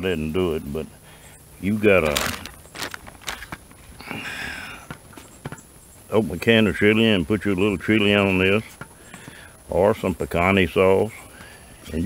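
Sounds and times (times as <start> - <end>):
hissing rustle of plastic pouch: 1.8 - 3.6.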